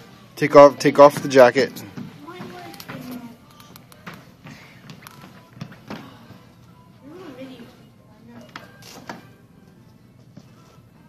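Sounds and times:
faint voices in a large room: 0.0s - 11.0s.

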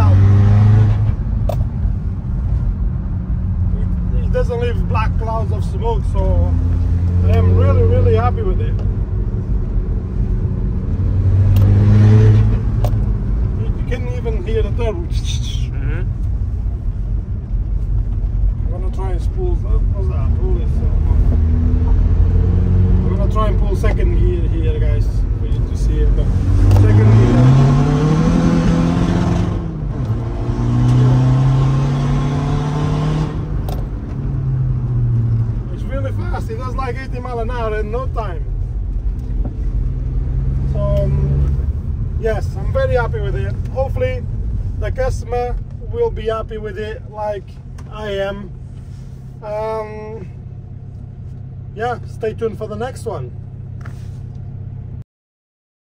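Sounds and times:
diesel engine pulling hard: 0.0s - 1.3s, 18.6s - 50.4s.

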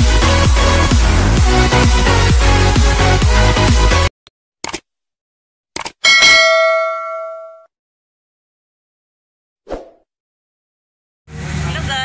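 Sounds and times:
notification bell ding: 6.0s - 7.7s.

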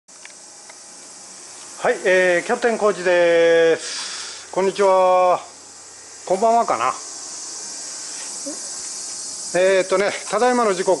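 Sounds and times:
insects droning: 0.1s - 11.0s
man speaking: 1.8s - 3.8s, 6.2s - 7.0s, 9.5s - 11.0s.

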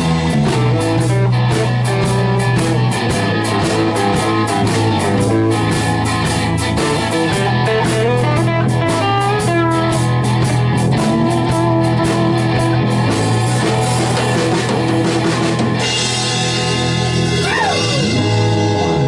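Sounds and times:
bass line: 0.0s - 19.0s
drum kit beat: 0.0s - 19.0s
electric guitars: 0.0s - 19.0s.

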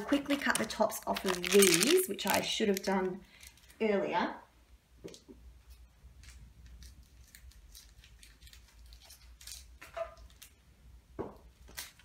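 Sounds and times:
scissors snipping plastic wrapper: 0.2s - 3.1s.

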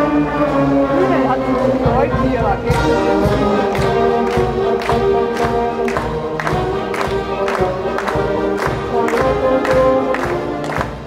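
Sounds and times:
concert band playing chords: 0.0s - 11.0s
percussion hits: 1.5s - 11.0s.

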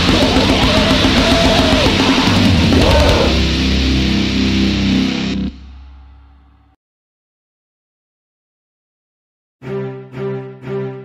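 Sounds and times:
distorted electric guitar and bass chord: 0.0s - 6.8s.

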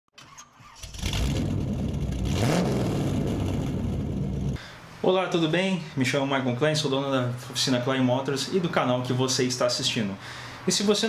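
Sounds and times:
car engine starting and revving: 0.2s - 4.6s.

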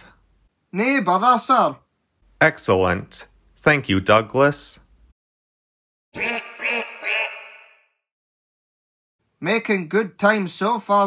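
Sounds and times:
duck quacking: 6.2s - 7.9s.

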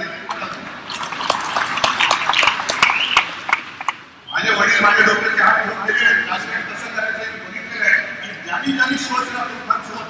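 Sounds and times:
audience applauding: 0.8s - 4.0s.

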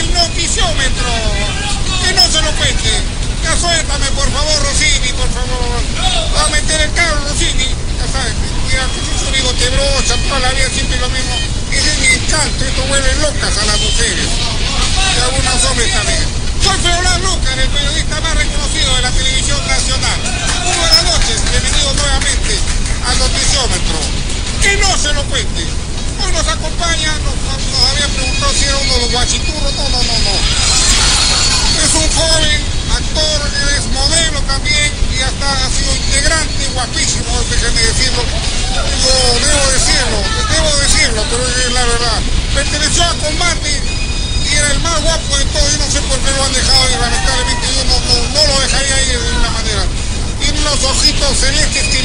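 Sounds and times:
man talking: 0.0s - 30.6s, 31.7s - 52.0s
steady low rumble: 0.0s - 51.8s.

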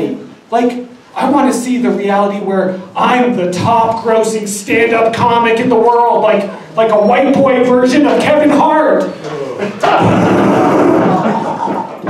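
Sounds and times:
audience laughing: 9.6s - 12.0s.

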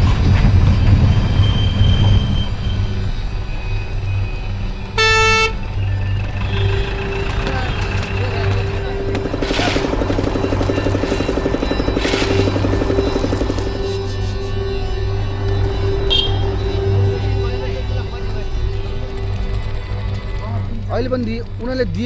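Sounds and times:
bus engine droning: 0.0s - 22.0s
vehicle horn toot: 4.9s - 9.9s, 15.8s - 17.2s.

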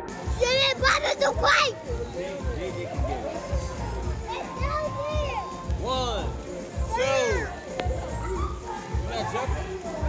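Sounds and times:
children calling out and playing: 0.0s - 2.2s, 2.9s - 10.0s
background music: 0.0s - 10.0s.

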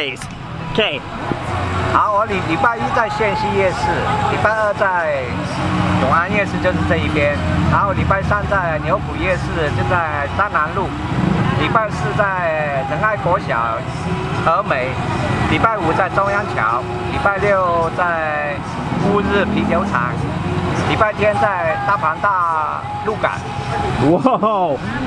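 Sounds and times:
man speaking: 0.0s - 1.1s, 2.0s - 10.9s, 11.6s - 25.0s.

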